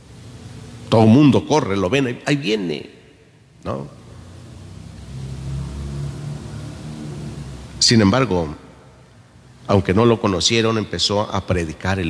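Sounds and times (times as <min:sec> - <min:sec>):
vehicle engine hum: 0:04.3 - 0:08.0.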